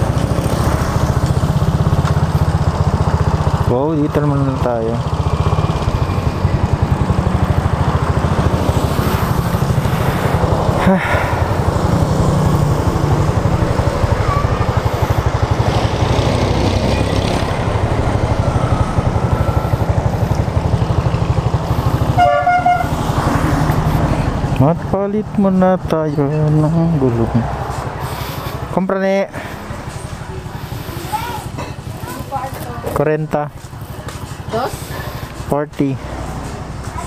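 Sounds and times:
motorcycle engine idling: 0:00.0 - 0:35.4
horn toot: 0:22.1 - 0:23.0.

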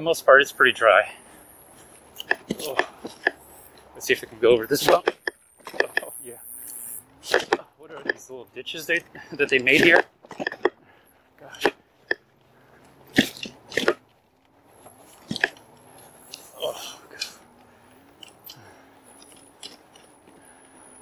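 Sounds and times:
bike knocking and rattling: 0:02.1 - 0:06.1, 0:07.2 - 0:12.3, 0:13.0 - 0:21.0.

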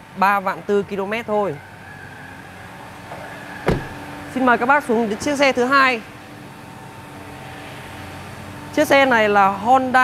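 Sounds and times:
car door shutting: 0:03.1 - 0:04.1.

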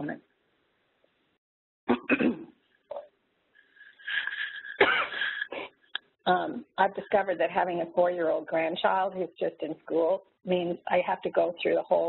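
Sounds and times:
person coughing: 0:01.9 - 0:02.5, 0:04.7 - 0:05.7
person clearing throat: 0:01.9 - 0:02.6, 0:04.8 - 0:05.5.

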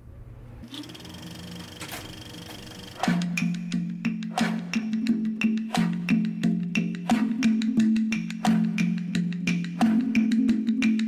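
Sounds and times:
film projector clatter: 0:00.7 - 0:03.2.

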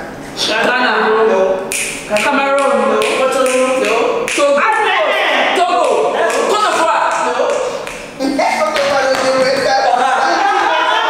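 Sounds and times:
women talking and calling out: 0:02.1 - 0:07.5.

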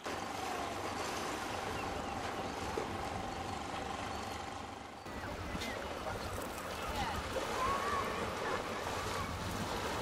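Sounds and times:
low engine hum: 0:00.0 - 0:10.0
water noise: 0:00.0 - 0:10.0.

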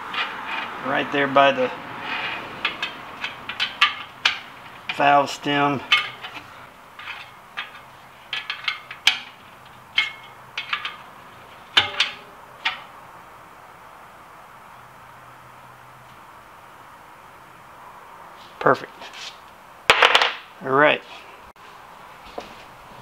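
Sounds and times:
spoke wrench clicking on spokes: 0:02.6 - 0:05.0.

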